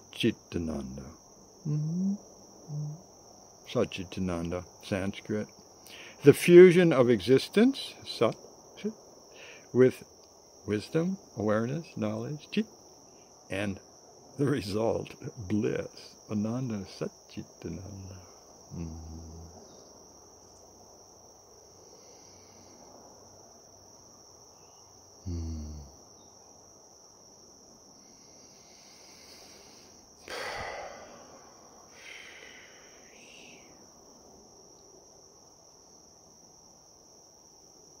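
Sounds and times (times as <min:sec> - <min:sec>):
high-pitched insect chorus: 0:00.0 - 0:38.0
low background noise: 0:00.0 - 0:38.0.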